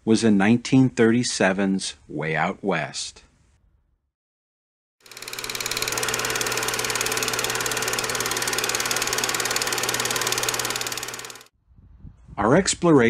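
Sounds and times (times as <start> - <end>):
rapid mechanical clatter: 5.0 - 11.5
low motor hum: 5.1 - 11.5.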